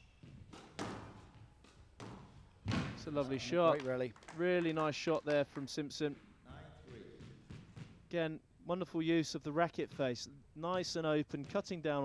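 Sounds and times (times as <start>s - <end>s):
squash ball impacts: 0.0s - 3.2s, 6.1s - 8.2s.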